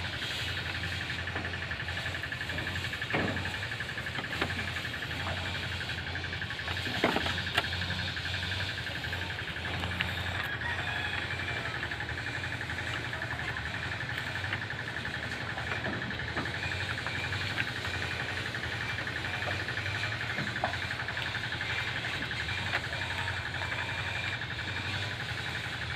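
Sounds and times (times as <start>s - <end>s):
goats chewing leafy branches: 0.0s - 25.9s.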